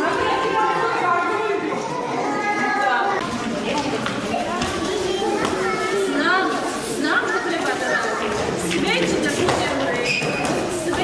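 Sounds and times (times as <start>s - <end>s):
children talking and calling out: 0.0s - 11.0s
murmur of chatter: 0.0s - 11.0s.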